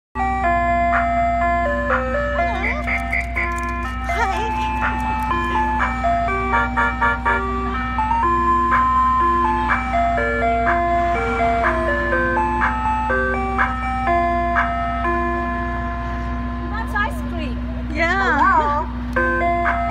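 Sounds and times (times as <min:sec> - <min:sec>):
ice cream truck chime jingle: 0:00.2 - 0:19.9
truck low hum: 0:00.2 - 0:19.9.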